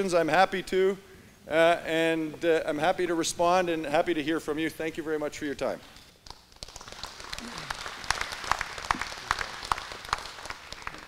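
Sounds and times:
audience applauding: 0:06.3 - 0:11.0.

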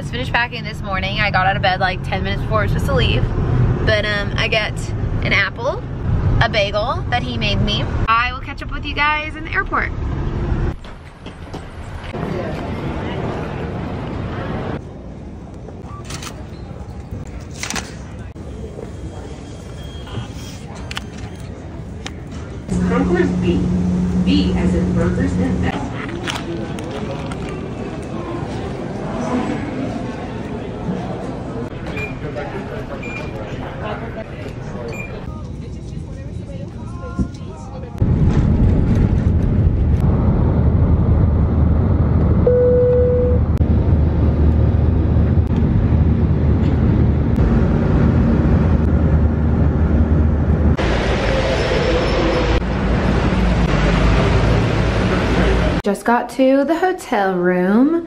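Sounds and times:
steady low rumble: 0:22.6 - 0:29.1, 0:35.5 - 0:51.2
brief steady tone: 0:42.4 - 0:43.5.

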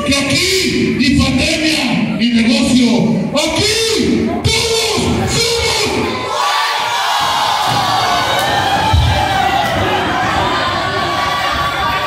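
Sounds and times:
crowd shouting and cheering: 0:03.3 - 0:12.0.

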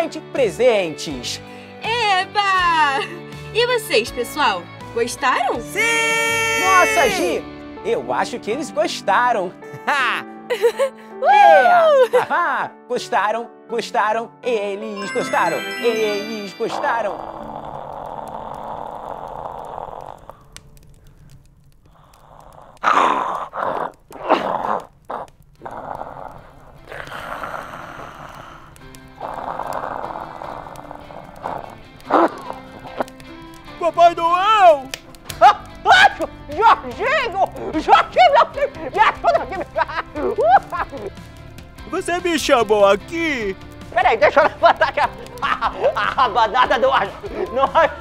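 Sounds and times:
background music: 0:00.0 - 0:22.2, 0:25.6 - 0:48.0
breathy vocal noises: 0:15.0 - 0:33.8.

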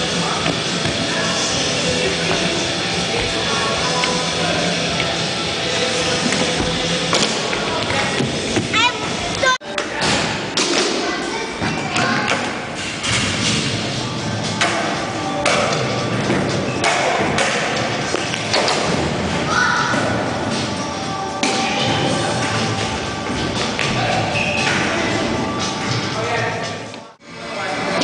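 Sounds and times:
music: 0:00.0 - 0:28.0.

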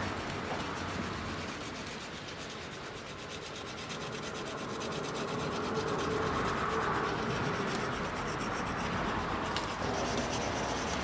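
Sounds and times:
antler scraping on whetstone: 0:00.0 - 0:11.0.

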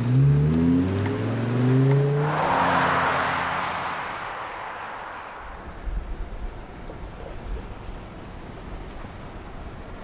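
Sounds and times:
car engine accelerating: 0:00.0 - 0:06.2
broad rushing noise: 0:02.1 - 0:06.6.

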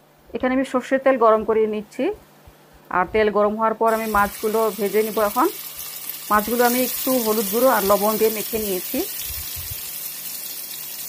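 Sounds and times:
woman talking: 0:00.3 - 0:02.2, 0:02.9 - 0:05.6, 0:06.3 - 0:09.2
fish sizzling in hot oil: 0:03.9 - 0:11.0.

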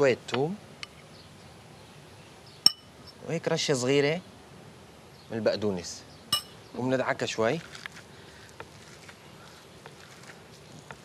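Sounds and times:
metal spoon clinking ceramic bowl: 0:06.3 - 0:06.6.

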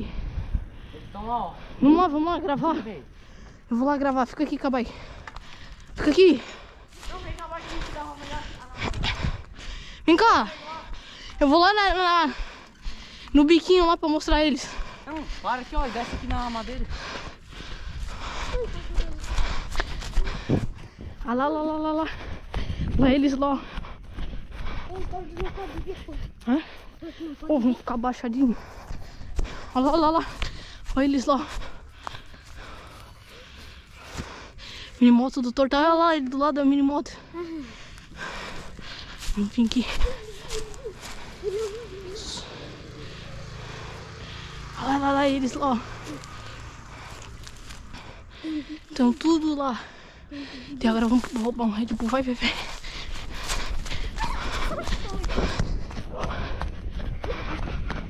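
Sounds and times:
wind noise on microphone: 0:00.0 - 0:01.2, 0:08.4 - 0:09.7, 0:22.1 - 0:25.6
distant vehicle engine hum: 0:38.0 - 0:51.5.

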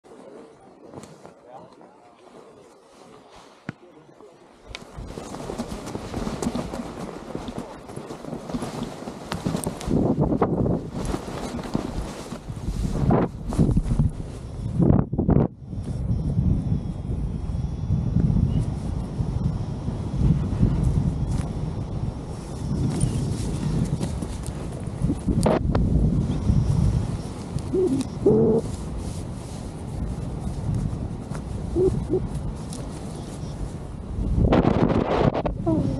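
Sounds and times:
running footsteps in snow: 0:04.7 - 0:14.7, 0:20.2 - 0:34.5
wind buffeting microphone: 0:04.7 - 0:35.9.

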